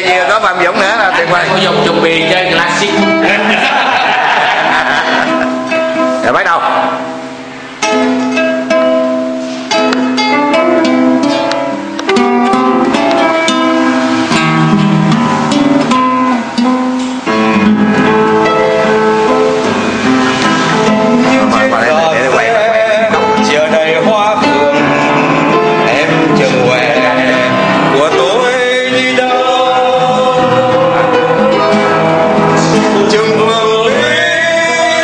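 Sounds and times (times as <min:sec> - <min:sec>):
nylon-string guitar plucked: 0:00.0 - 0:03.5, 0:05.0 - 0:35.0.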